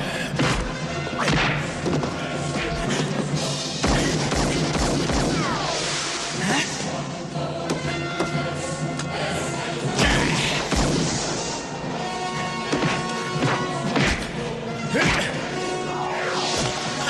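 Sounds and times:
film music: 0.0s - 17.0s.

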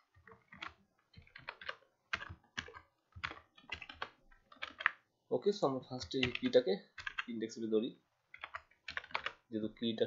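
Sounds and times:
computer keyboard typing: 0.0s - 5.1s, 5.9s - 7.6s, 8.3s - 9.5s.

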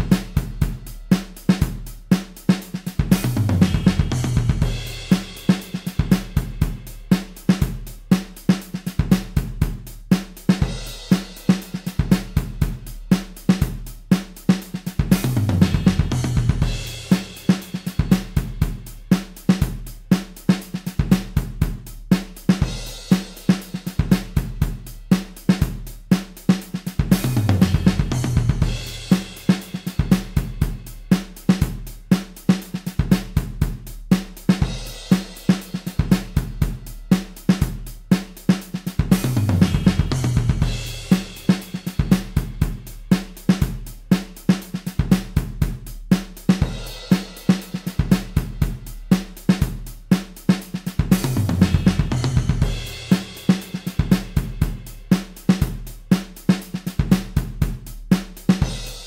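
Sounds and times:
drum fill with cymbal wash: 0.0s - 59.0s
jazz drum loop: 0.0s - 59.0s.

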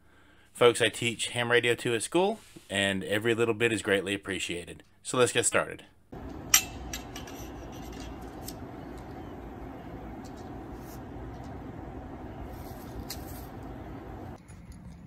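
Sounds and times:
low outdoor background noise: 4.4s - 15.0s.

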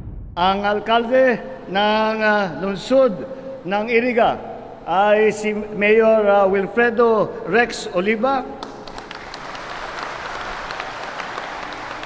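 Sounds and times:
audience applauding: 8.6s - 12.0s.

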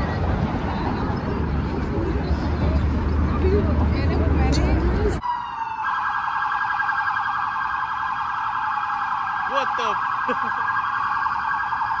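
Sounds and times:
crowd noise: 0.0s - 5.2s
police siren: 5.2s - 12.0s.

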